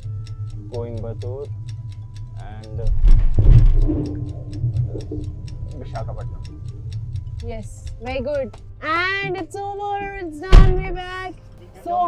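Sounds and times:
countdown timer ticking: 0:00.0 - 0:11.3
cable car cabin rumble: 0:02.4 - 0:11.3.

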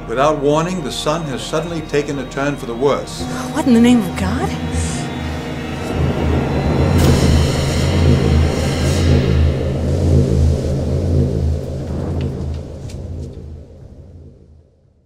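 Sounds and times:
dark music: 0:00.0 - 0:15.0
deep cinematic rumble: 0:00.0 - 0:15.0.

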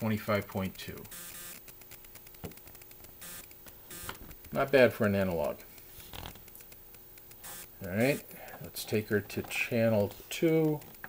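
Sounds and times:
faint steady hum: 0:00.0 - 0:11.0
small clicks: 0:00.0 - 0:11.0
camera handling noise: 0:05.8 - 0:07.6.

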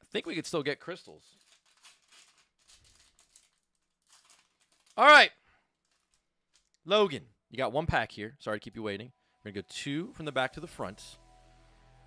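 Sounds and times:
foil wrapper crinkling: 0:01.3 - 0:06.8.

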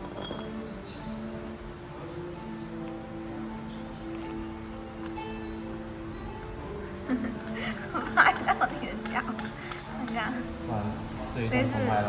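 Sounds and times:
plastic clinking against glass: 0:00.0 - 0:00.6
background music sustained notes: 0:00.0 - 0:12.0.

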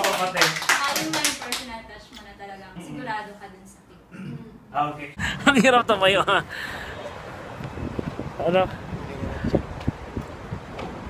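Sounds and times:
hand claps: 0:00.0 - 0:01.7
people talking: 0:00.0 - 0:06.4.

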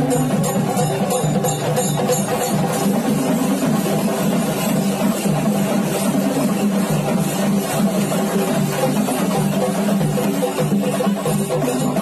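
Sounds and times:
large crowd noise: 0:00.0 - 0:12.0
traditional drumming: 0:00.0 - 0:12.0.

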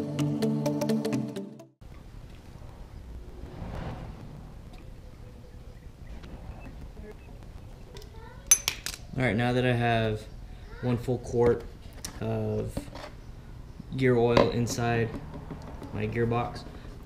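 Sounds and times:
background music: 0:00.0 - 0:01.7.

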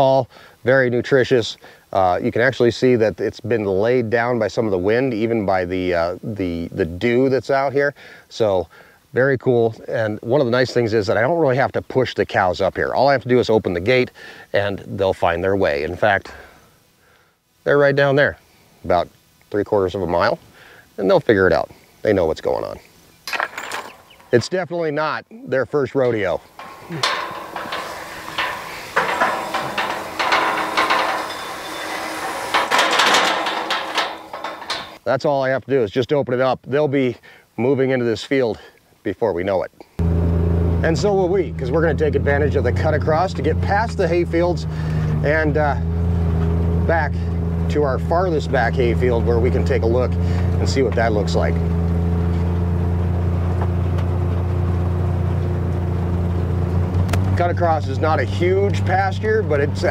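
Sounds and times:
metal gate rattling and clanking: 0:23.3 - 0:24.7, 0:26.0 - 0:35.0, 0:40.8 - 0:59.9
utility vehicle engine humming: 0:26.0 - 0:35.0, 0:40.0 - 0:59.9.

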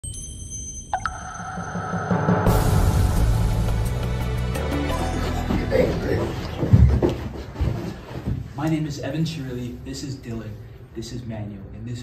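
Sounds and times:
ringing pings: 0:00.0 - 0:02.5
electronic intro music: 0:01.0 - 0:06.6.

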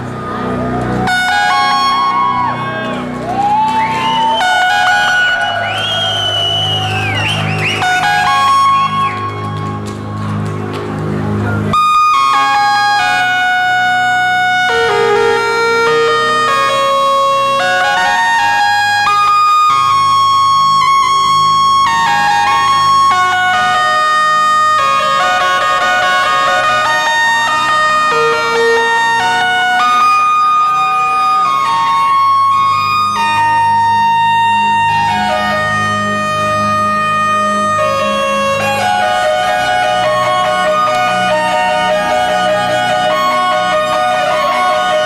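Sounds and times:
low droning synth bass: 0:00.0 - 0:45.0
bright sustained synth line: 0:11.7 - 0:45.0.

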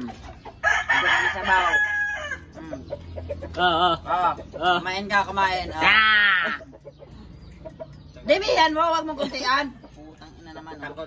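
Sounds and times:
rooster crowing: 0:00.6 - 0:02.5.

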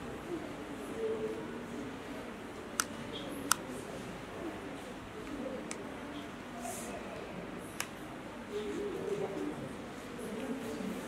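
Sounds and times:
bird cooing: 0:00.3 - 0:01.8, 0:05.2 - 0:07.2, 0:08.5 - 0:09.7.

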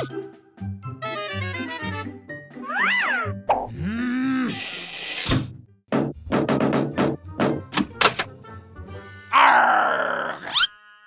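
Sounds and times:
background music: 0:00.0 - 0:04.6, 0:05.4 - 0:11.0
cartoon grunts of effort: 0:02.7 - 0:04.6.

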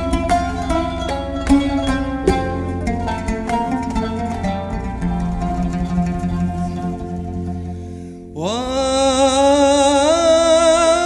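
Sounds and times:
man singing with vibrato: 0:08.3 - 0:11.0.

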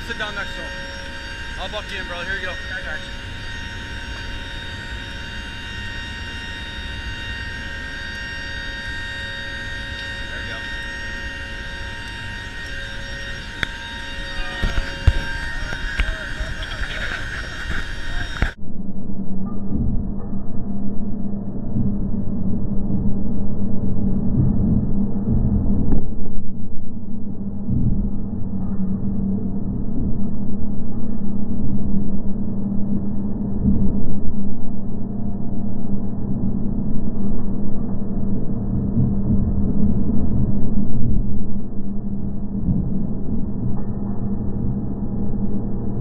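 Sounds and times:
muffled low rumble: 0:00.0 - 0:46.0
turboprop engines droning: 0:00.0 - 0:46.0.

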